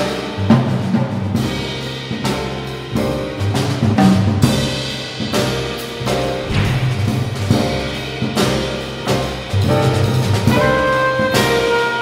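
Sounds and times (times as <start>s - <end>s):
jazz combo playing: 5.8s - 12.0s
cymbal crashes: 6.4s - 9.5s.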